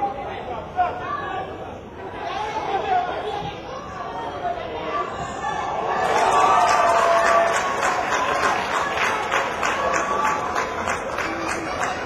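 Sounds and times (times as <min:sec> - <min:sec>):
chatter of spectators: 0:00.0 - 0:12.0.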